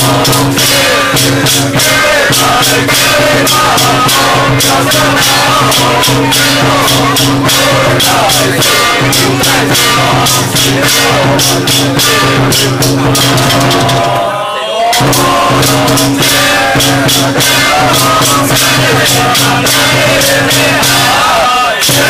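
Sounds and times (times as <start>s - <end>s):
drum and cymbal percussion: 0.0s - 22.0s
voices chanting: 0.0s - 22.0s.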